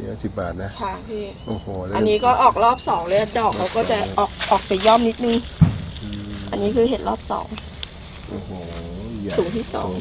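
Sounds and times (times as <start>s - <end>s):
steady low hum: 0.0s - 10.0s
person talking: 0.8s - 5.4s, 6.0s - 7.6s, 8.3s - 10.0s.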